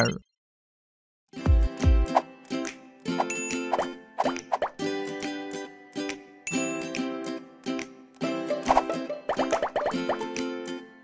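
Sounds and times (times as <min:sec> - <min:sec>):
plucked ukulele music: 0:01.4 - 0:11.0.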